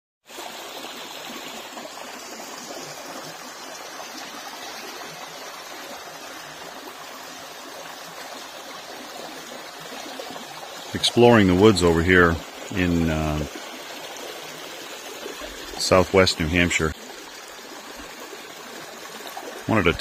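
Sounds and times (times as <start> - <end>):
brook running over stones: 0.3 - 20.0.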